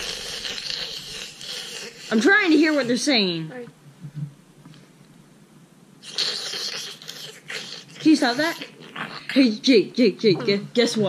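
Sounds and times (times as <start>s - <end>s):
slurping through a straw: 0.0s - 2.9s, 6.0s - 9.3s.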